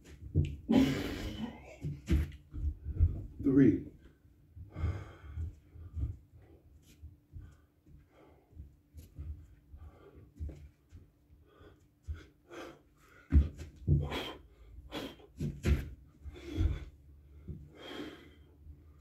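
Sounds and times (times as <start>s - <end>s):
man breathing hard: 4.6s - 6.7s, 7.3s - 19.0s
hands and feet thudding on mat: 15.4s - 17.6s.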